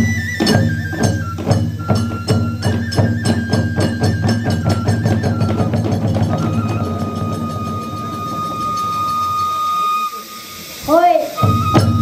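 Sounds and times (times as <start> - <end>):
bamboo flute long high note: 0.0 - 12.0
hand cymbals: 0.0 - 12.0
small gong: 5.5 - 10.1, 11.4 - 12.0.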